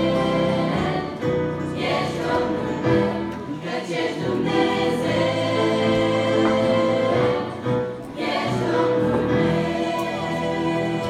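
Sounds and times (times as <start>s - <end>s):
girls' choir singing: 0.0s - 11.0s.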